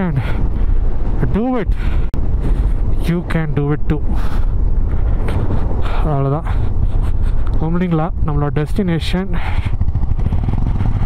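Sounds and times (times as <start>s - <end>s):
wind buffeting microphone: 0.0s - 11.0s
motorcycle engine running: 9.0s - 11.0s.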